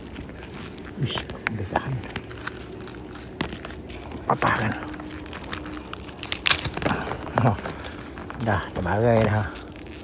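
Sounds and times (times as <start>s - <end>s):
plant stalk snapping: 3.3s - 10.0s.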